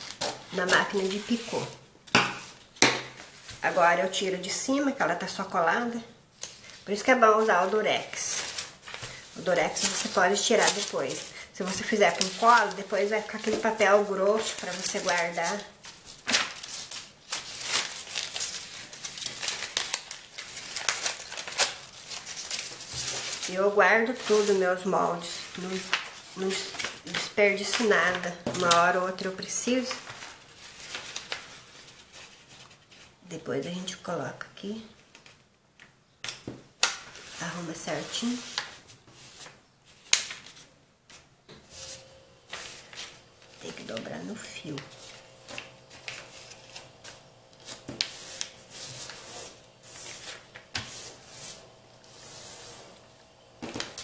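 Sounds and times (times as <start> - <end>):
stiff paper crackling and rustling: 0.0 - 4.2, 6.4 - 33.2, 42.5 - 51.6.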